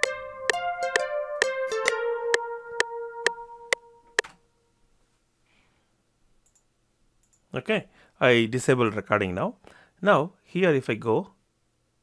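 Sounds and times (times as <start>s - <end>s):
metronome ticking: 0.0s - 4.2s
sustained piano-bell synth notes: 0.0s - 4.2s.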